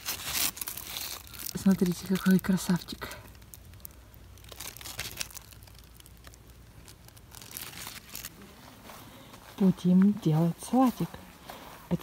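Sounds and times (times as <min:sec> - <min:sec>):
leaves rustling and crackling: 0:00.0 - 0:12.0.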